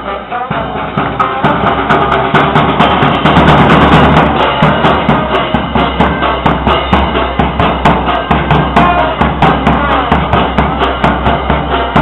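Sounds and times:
drums fast beat: 0.0s - 12.0s
sustained melody notes: 0.0s - 12.0s.

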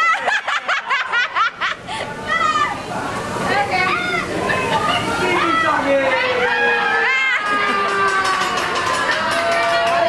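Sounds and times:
women laughing and shrieking: 0.0s - 2.7s, 4.0s - 8.7s
chatter: 0.0s - 10.0s.

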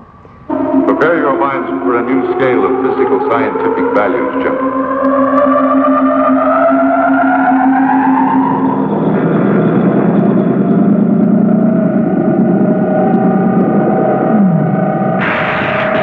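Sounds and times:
dense pulsing drone: 0.0s - 16.0s
steady low hum: 0.0s - 16.0s
oscillator tones gliding upward: 0.5s - 15.2s.

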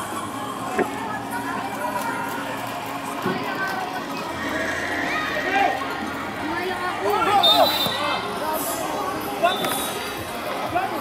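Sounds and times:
children calling and shouting: 0.0s - 11.0s.

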